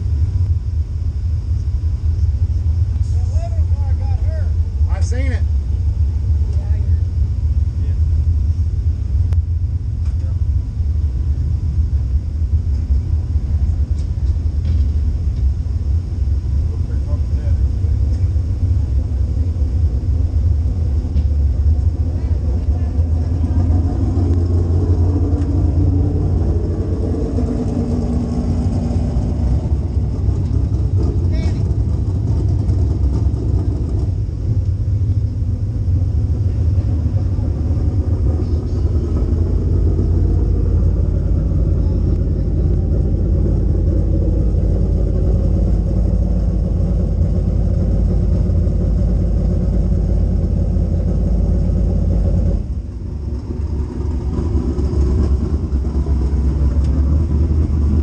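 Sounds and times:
car engine idling: 0:00.0 - 0:58.0.

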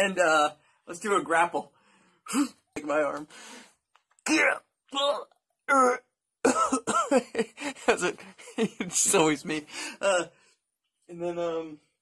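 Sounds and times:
man grunting and straining: 0:05.7 - 0:06.9.

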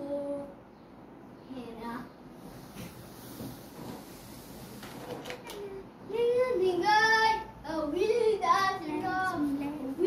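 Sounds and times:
child singing: 0:05.5 - 0:10.0.

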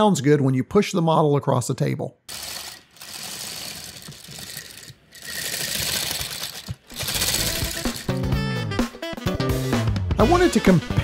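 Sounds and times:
plastic tank tracks rattling: 0:02.3 - 0:08.2
background music: 0:06.9 - 0:11.0.

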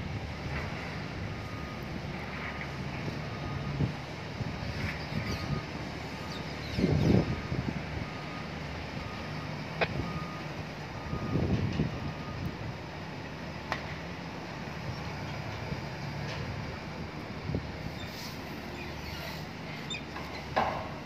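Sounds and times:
forklift engine running: 0:00.0 - 0:21.0
back-up alarm beeps: 0:01.4 - 0:04.0, 0:04.6 - 0:12.7.

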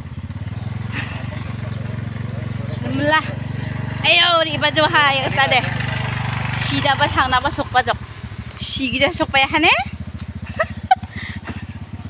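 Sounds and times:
motorcycle engine running: 0:00.0 - 0:12.0
woman's voice: 0:02.8 - 0:03.4, 0:04.0 - 0:08.0, 0:08.6 - 0:09.9.

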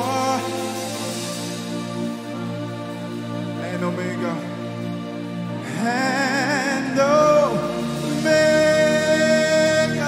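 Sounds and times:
man singing into microphone: 0:00.0 - 0:01.3, 0:03.6 - 0:04.5, 0:05.6 - 0:10.0
sustained backing chords: 0:00.0 - 0:10.0.

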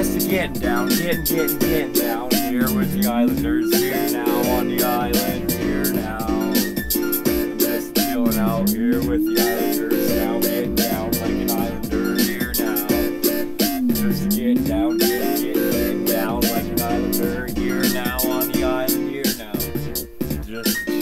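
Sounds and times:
instrumental beat with drums: 0:00.0 - 0:21.0.

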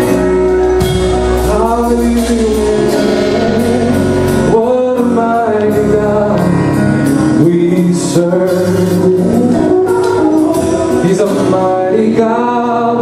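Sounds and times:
electronic keyboard: 0:00.0 - 0:13.0
man singing long held notes: 0:01.2 - 0:13.0.

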